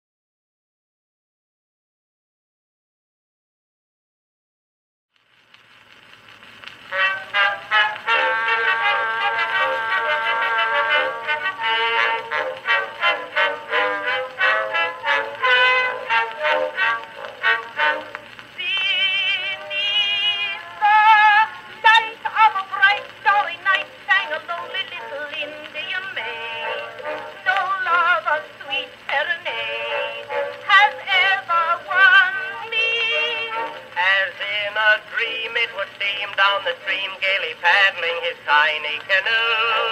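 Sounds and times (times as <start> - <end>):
phonograph playing instrumental music: 5.5 - 39.9.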